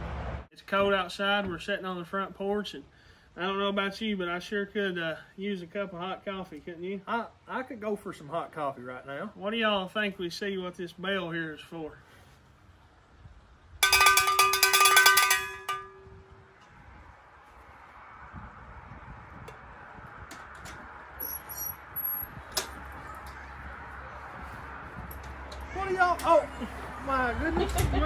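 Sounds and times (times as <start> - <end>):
call bell rung rapidly: 13.8 - 16.2.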